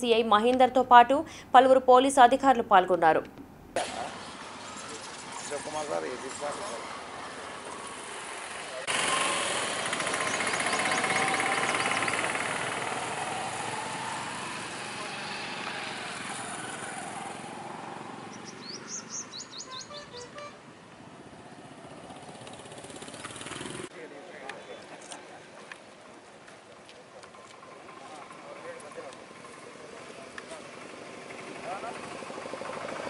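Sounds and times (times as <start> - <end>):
bird chirping: 10.2 - 12.1, 18.3 - 20.6.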